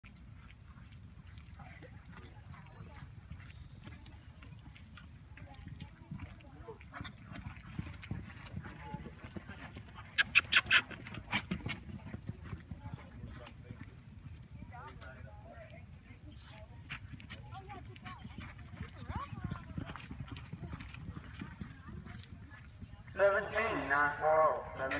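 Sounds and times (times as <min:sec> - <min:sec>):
horse hoofbeats galloping on dirt: 0:00.0 - 0:24.9.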